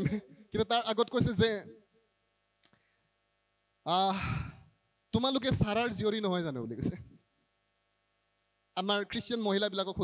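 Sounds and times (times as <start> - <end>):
man speaking through microphone: 0.0 - 1.8, 5.1 - 7.1, 8.8 - 10.0.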